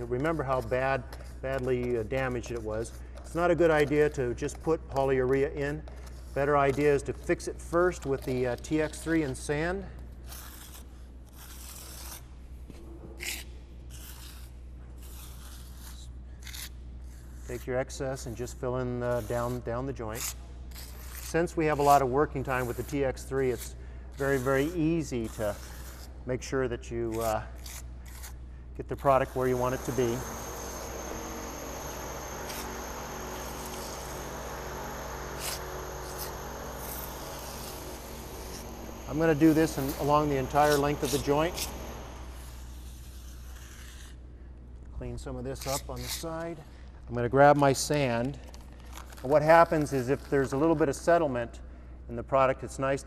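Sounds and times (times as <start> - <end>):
spatula scraping repair mix on concrete: 0.0 - 12.2, 18.5 - 26.2, 26.8 - 44.2
mechanical hum with high whine: 0.0 - 53.0.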